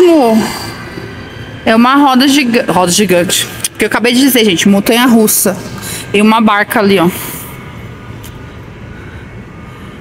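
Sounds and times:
indoor ambient hum: 0.0 - 10.0.

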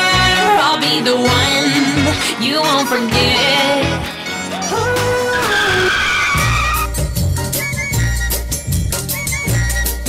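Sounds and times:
pop music: 0.0 - 10.0
tyre screech: 4.3 - 8.0.

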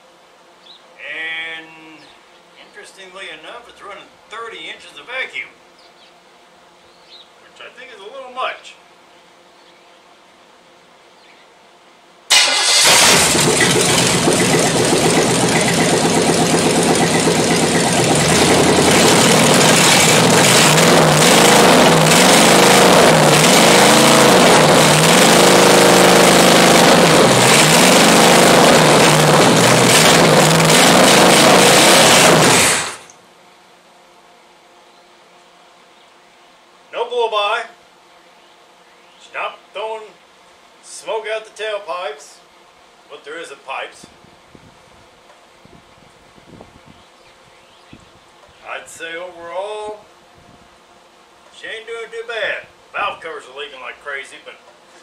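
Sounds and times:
engine revving on open exhaust: 12.3 - 33.1.

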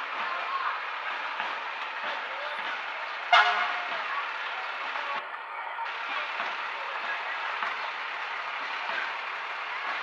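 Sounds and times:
crowd chatter: 0.0 - 10.0
fire truck horn toot: 3.2 - 4.0.

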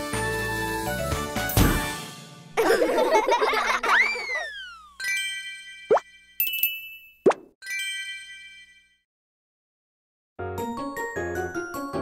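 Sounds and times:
bell-like chimes: 4.6 - 9.1.

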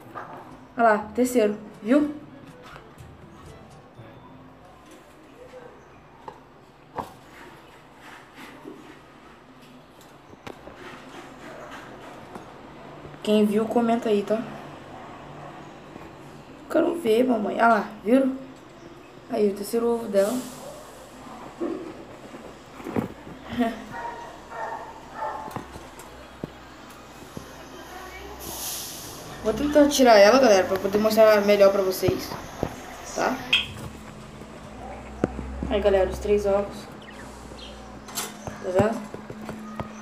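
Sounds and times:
muffled voices: 19.9 - 40.0.

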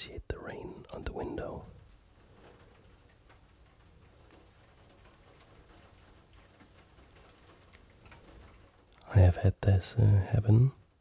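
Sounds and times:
rain drops ticking on window: 0.0 - 11.0.

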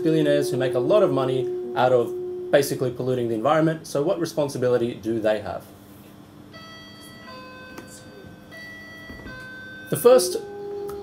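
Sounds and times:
two-note electronic tone: 0.0 - 4.8, 6.5 - 11.0.

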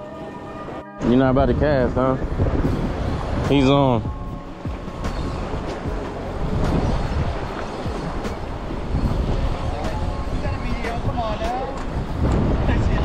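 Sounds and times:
wind buffeting microphone: 0.6 - 13.0
surf washing against rocks: 1.6 - 13.0.

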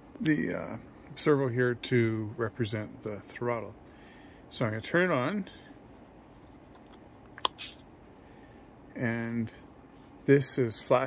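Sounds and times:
brief soft hiss: 7.4 - 7.8.

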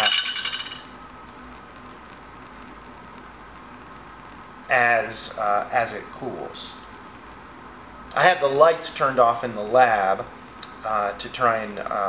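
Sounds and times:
glass chain links clinking: 0.0 - 0.9.

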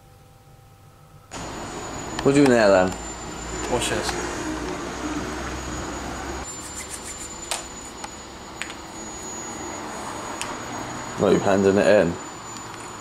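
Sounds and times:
faint high whine: 0.0 - 13.0.

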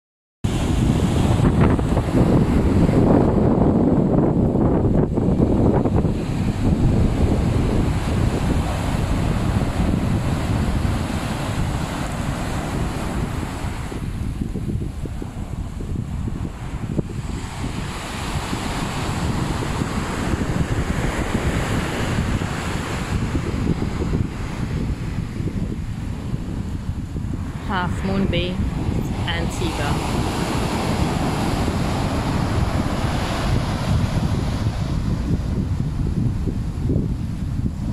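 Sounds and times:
wind buffeting microphone: 0.4 - 37.9
surf washing on beach: 0.5 - 37.9.

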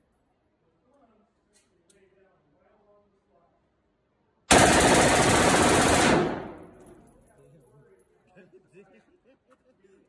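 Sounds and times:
rifle firing full-auto burst: 4.5 - 7.0.

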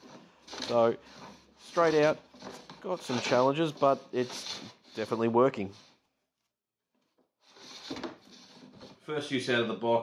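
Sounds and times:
hand plane scraping wood: 0.0 - 6.0, 7.4 - 9.1.

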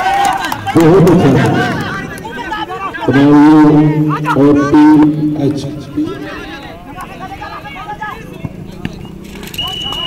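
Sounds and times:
people shouting: 0.0 - 5.2, 5.9 - 8.4
referee whistle blast: 9.6 - 10.0.

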